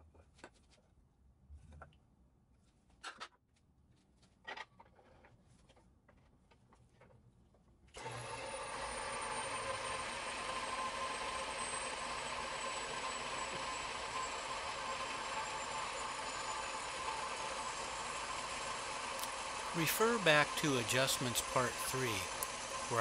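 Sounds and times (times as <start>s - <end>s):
bandsaw running: 8.0s - 23.0s.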